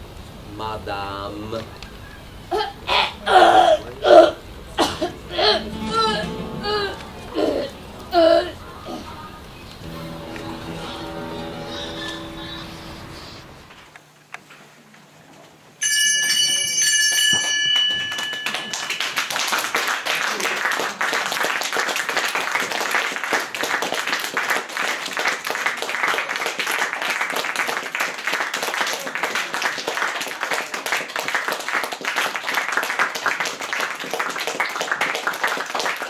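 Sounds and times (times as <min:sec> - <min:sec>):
audience applause: 0:09.2 - 0:13.6, 0:18.1 - 0:36.0
bright bell-like chime: 0:15.8 - 0:19.3.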